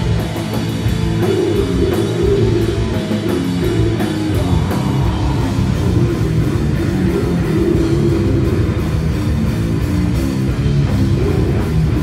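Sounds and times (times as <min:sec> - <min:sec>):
distorted guitars: 0:00.0 - 0:12.0
drum kit: 0:00.0 - 0:12.0.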